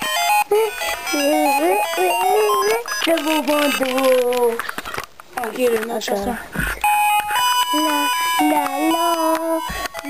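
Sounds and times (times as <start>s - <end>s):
electronic beeping tune: 0.1s - 3.2s, 6.8s - 9.9s
child singing: 7.7s - 9.8s.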